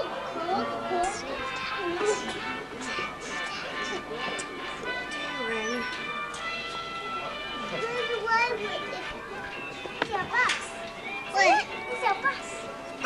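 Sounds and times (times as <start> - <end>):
children calling out and chattering: 0.0 - 13.0
faint background music: 0.0 - 13.0.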